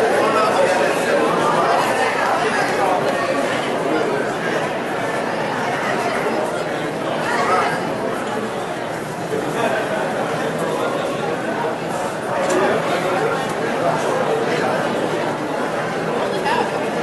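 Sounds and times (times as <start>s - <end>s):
crowd chatter in a hall: 0.0s - 17.0s.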